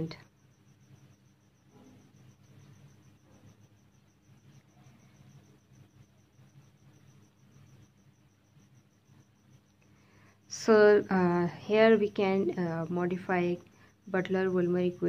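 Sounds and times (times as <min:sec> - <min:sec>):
cricket chirping: 0:00.0 - 0:15.0.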